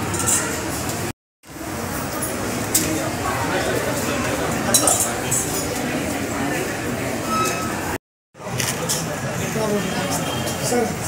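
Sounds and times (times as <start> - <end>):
chatter of voices: 1.7 - 11.0
metal cup and spoon clinking: 4.7 - 5.7.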